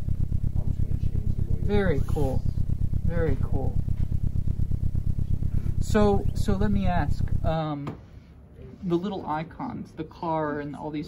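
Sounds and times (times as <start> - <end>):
synthesized car engine rumble: 0.0 - 7.6.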